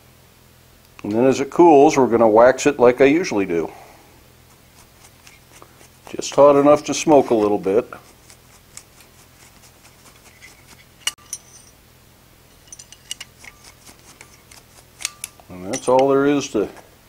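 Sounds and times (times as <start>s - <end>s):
tongs tapping and scraping on anvil: 10.2s - 11.8s, 12.6s - 16.5s
light metal clicks: 12.6s - 16.8s.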